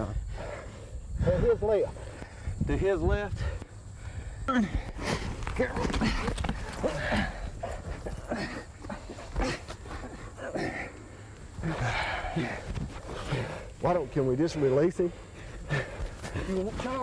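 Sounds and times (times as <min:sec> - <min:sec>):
grunting: 0:04.5 - 0:13.8.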